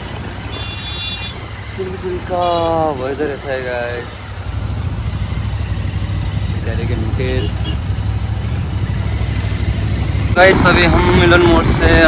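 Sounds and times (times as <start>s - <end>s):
motorcycle engine running: 4.0s - 12.0s.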